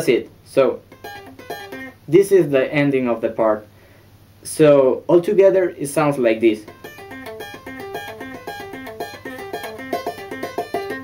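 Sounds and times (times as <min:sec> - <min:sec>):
electric guitar tapping arpeggio: 0:00.9 - 0:02.0, 0:06.6 - 0:11.0.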